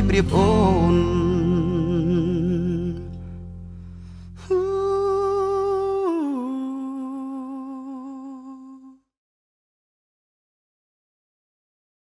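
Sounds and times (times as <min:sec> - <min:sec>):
pop song backing music: 0:00.0 - 0:03.2.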